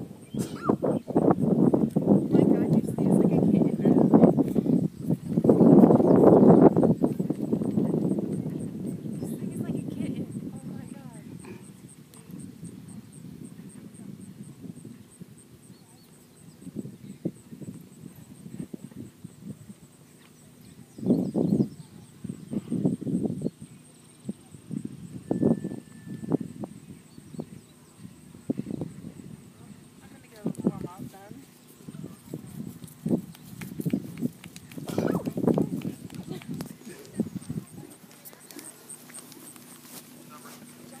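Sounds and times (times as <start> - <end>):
outdoor background noise: 0.0 - 41.0
people talking: 2.1 - 4.7, 7.1 - 22.8, 27.6 - 41.0
horse hoofbeats on sand: 32.4 - 41.0.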